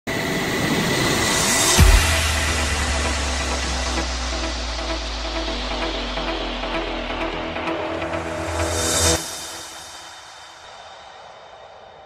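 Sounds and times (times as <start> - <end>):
low drone: 0.1 - 12.0
rising whoosh: 0.1 - 12.0
deep bass impact: 1.8 - 8.6.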